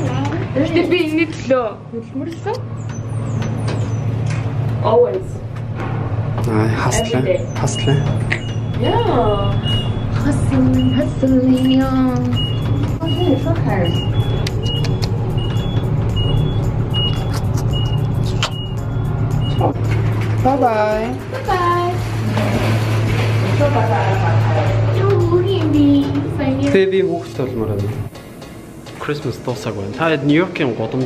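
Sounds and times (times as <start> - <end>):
elevator hum: 0.0 - 31.0
high electronic beeps: 6.9 - 19.8
sharp click: 14.4 - 15.6, 17.1 - 18.7.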